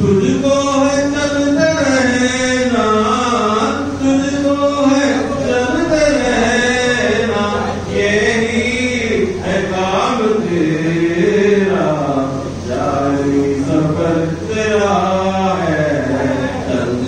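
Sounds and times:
man chanting: 0.0 - 17.0.

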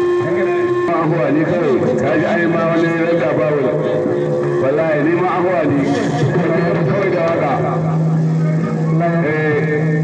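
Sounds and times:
man calling: 0.0 - 10.0.

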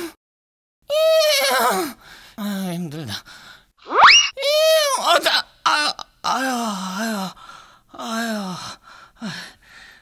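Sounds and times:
whistle-like rising tone: 3.9 - 4.3.

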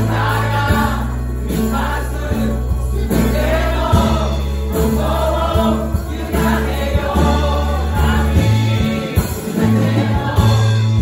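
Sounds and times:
congregation singing in chorus: 0.0 - 11.0
worship band playing: 0.0 - 11.0.

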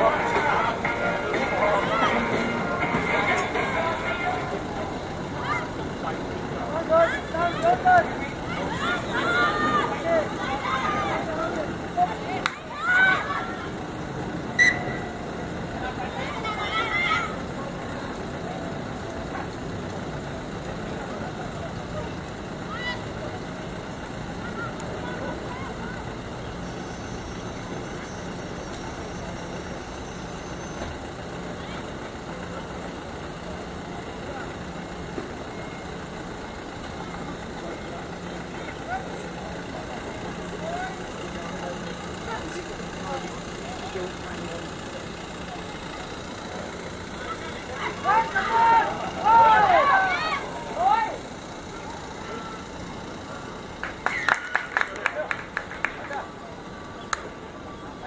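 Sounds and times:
faint scattered voices: 0.0 - 58.0.

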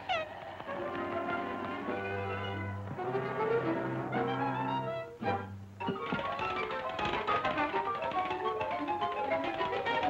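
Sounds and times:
cartoon orchestral music: 0.7 - 10.0
tapping percussion clicks: 5.8 - 10.0.

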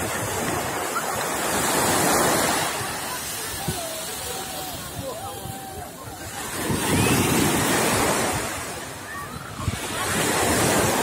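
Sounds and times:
sea waves breaking on beach: 0.0 - 11.0.

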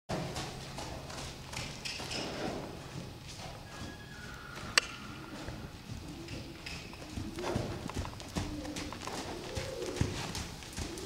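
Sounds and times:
horse hoofbeats on sand: 0.1 - 11.0.

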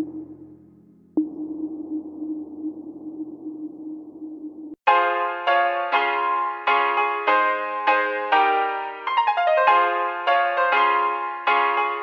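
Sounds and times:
electric piano chords: 4.9 - 12.0.

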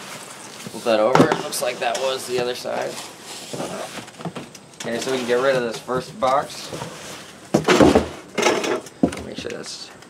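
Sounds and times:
cardboard scraping and rubbing: 0.0 - 8.3.

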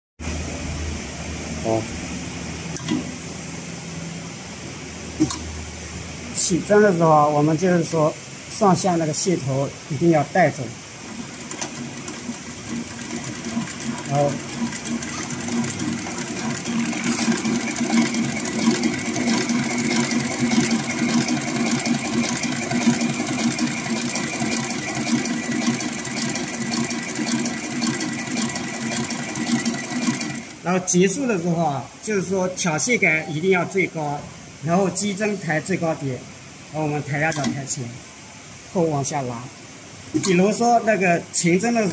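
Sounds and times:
low machinery hum: 9.4 - 30.9.

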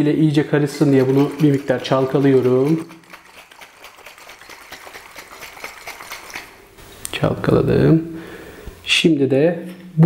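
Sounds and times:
water sloshing in plastic bottle: 0.3 - 6.6.

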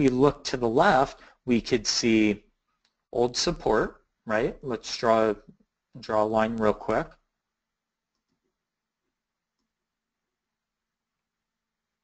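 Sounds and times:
faint mouse clicks: 2.8 - 3.1, 8.1 - 8.6.

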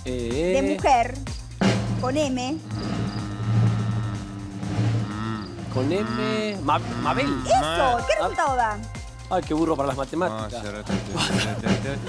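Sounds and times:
game show background music: 0.0 - 12.0.

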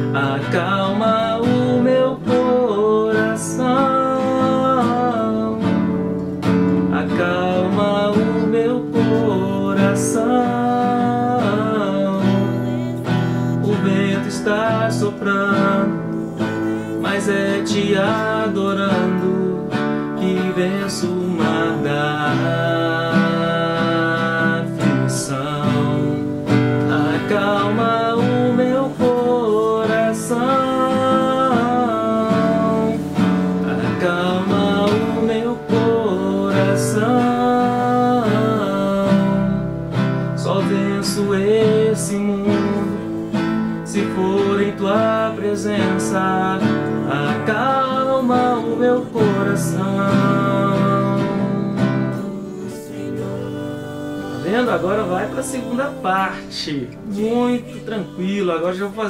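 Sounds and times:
classical guitar strumming: 0.0 - 59.0.

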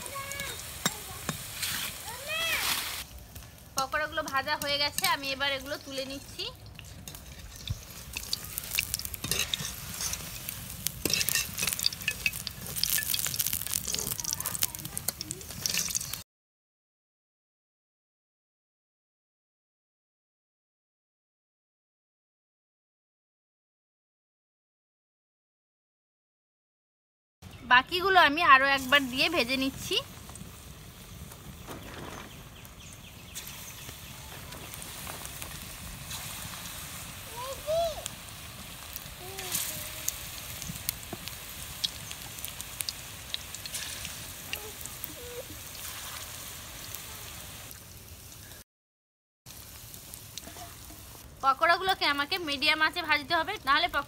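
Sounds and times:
pakoras sizzling in frying oil: 0.0 - 16.2, 27.5 - 48.6, 49.5 - 54.0
wire skimmer scraping pan: 6.8 - 16.2.

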